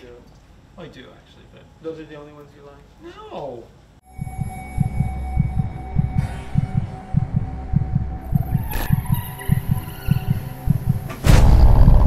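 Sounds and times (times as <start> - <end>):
throbbing heartbeat-like pulse: 4.1 - 12.0.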